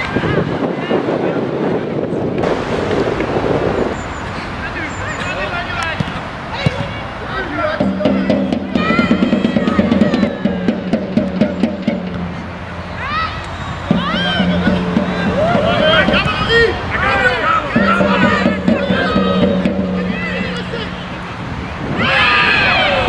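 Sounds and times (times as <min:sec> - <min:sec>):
footballers shouting: 0:02.4 - 0:23.0.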